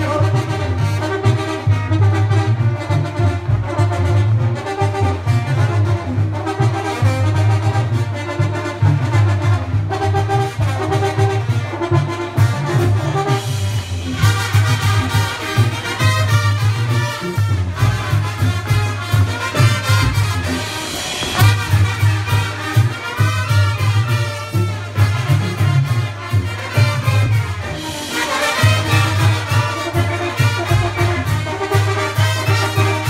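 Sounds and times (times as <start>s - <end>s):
latin dance music with brass: 0.0s - 33.0s.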